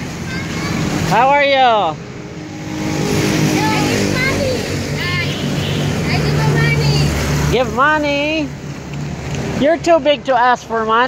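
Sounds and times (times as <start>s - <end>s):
child's voice: 0.0s - 1.1s, 3.6s - 5.3s.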